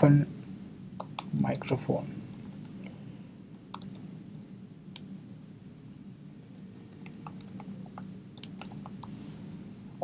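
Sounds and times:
steady low hum: 0:00.0 - 0:10.0
keyboard keystrokes: 0:06.4 - 0:09.2.

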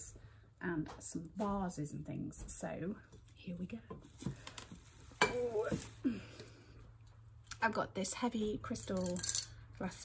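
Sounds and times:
glass beads rattling in vase: 0:08.8 - 0:09.7.

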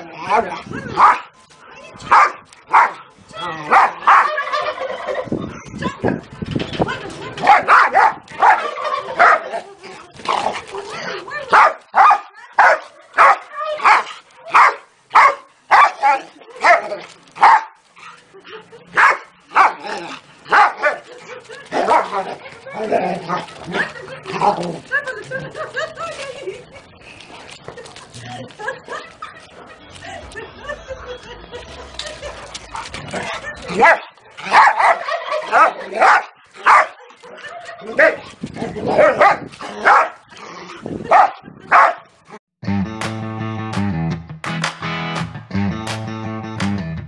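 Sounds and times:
dog barking: 0:01.0 - 0:01.3, 0:02.1 - 0:03.0, 0:03.7 - 0:04.4, 0:07.4 - 0:09.4, 0:11.5 - 0:16.8, 0:17.4 - 0:17.8, 0:19.0 - 0:19.8, 0:20.5 - 0:21.0, 0:33.8 - 0:37.0, 0:39.0 - 0:40.2, 0:41.1 - 0:42.1.

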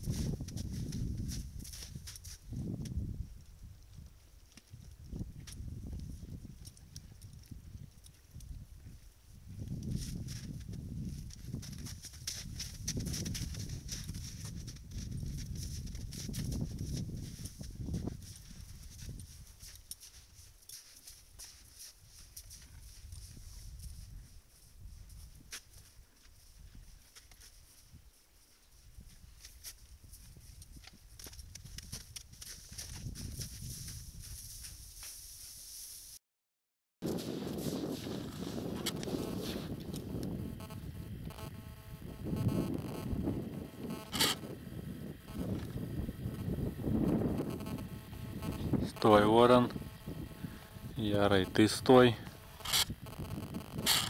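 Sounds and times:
hoof steps on wet snow and mud: 0:00.0 - 0:36.1, 0:37.0 - 0:40.4
sharp clicks: 0:43.8 - 0:44.5, 0:46.3 - 0:54.0.

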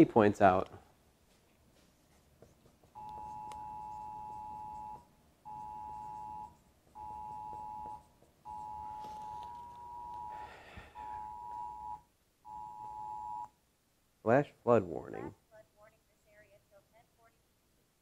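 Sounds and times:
phone emergency alert tone: 0:03.0 - 0:13.5.

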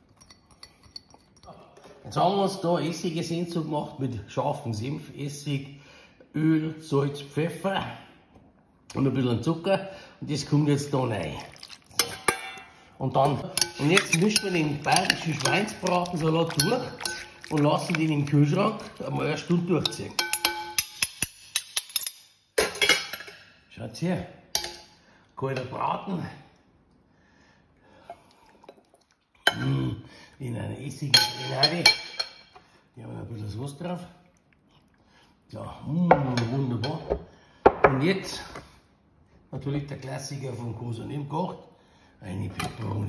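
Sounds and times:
bowls clinking together: 0:00.0 - 0:02.0, 0:11.3 - 0:23.4, 0:31.1 - 0:32.6.

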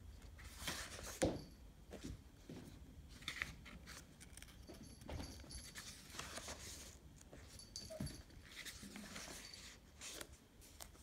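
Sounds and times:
paper pages rustling: 0:03.1 - 0:04.7, 0:05.6 - 0:07.4, 0:08.4 - 0:11.0.

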